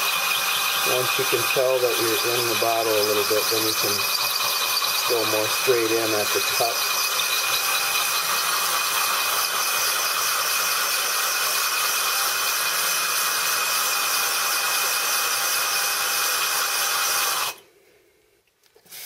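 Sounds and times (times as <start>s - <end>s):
drill bit grinding glass: 0.0s - 17.6s.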